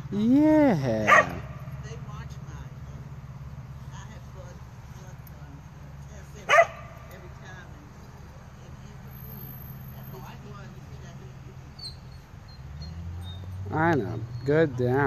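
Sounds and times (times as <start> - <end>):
dog barking: 1.0 - 1.6, 6.4 - 7.0.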